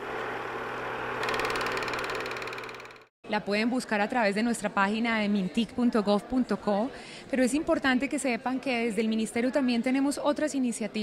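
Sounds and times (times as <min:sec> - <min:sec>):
film projector whirring and clicking: 0:01.2 - 0:03.1.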